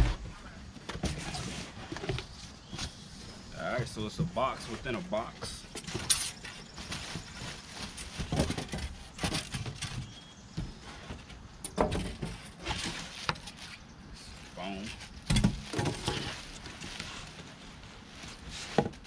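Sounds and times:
plastic and foam packaging rustling: 0.0s - 19.0s.

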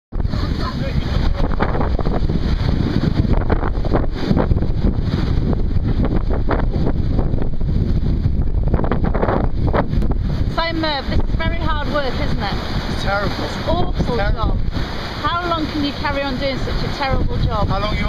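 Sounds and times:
sea rushing past hull: 0.1s - 18.0s
wind buffeting microphone: 0.1s - 18.0s
faint voice: 0.2s - 1.4s.

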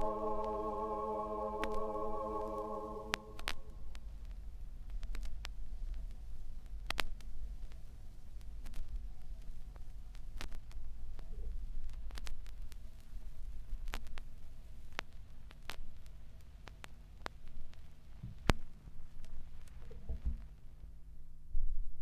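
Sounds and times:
low rumble: 0.0s - 3.8s.

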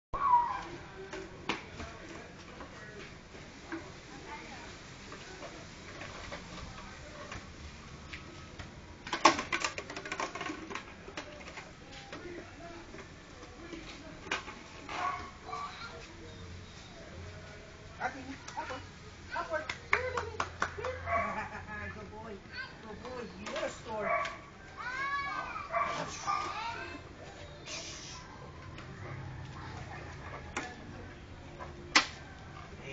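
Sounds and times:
faint background noise: 0.2s - 32.9s.

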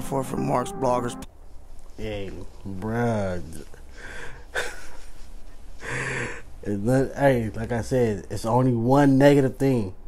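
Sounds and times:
man laughing breathily: 4.0s - 6.4s.

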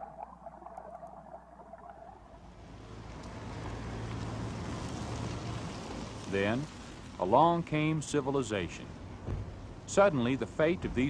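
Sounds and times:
vehicle engine and road noise: 2.4s - 11.0s.

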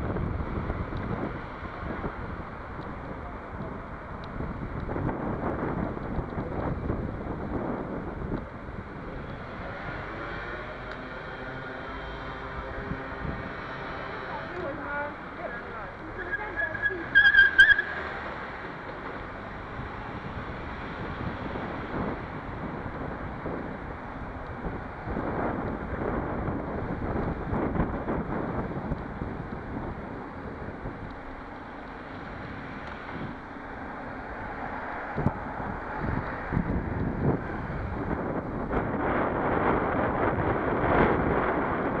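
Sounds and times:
wind buffeting microphone: 0.0s - 10.2s, 12.5s - 17.7s, 18.7s - 42.0s
city street traffic hum: 0.0s - 42.0s.

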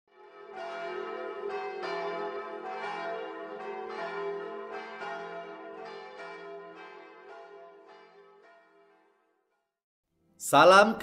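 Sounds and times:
church bells ringing: 0.1s - 9.6s.

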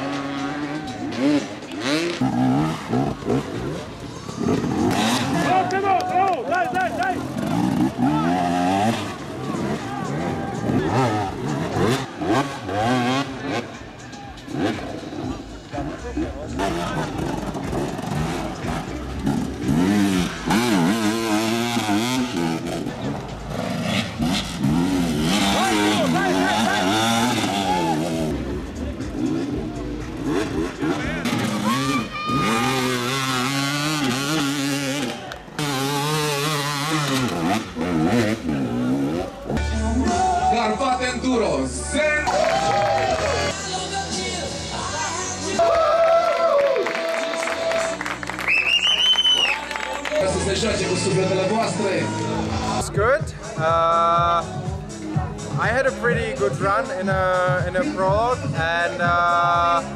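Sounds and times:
motorcycle engines revving: 0.0s - 45.9s, 46.7s - 59.9s
people's voices: 0.0s - 59.9s.

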